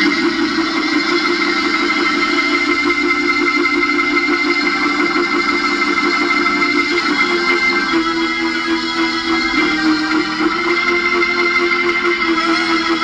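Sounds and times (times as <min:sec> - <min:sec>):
organ sustained chord: 0:00.0 - 0:13.0.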